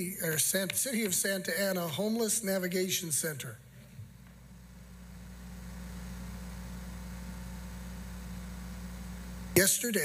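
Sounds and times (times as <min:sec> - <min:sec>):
faint hiss: 0:00.0 - 0:10.0
low electrical hum: 0:00.0 - 0:10.0.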